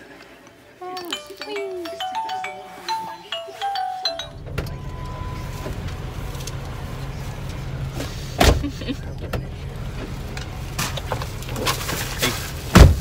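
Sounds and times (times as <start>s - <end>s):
toy playing tinkly tune: 0.8s - 5.3s
car engine idling: 4.2s - 13.0s.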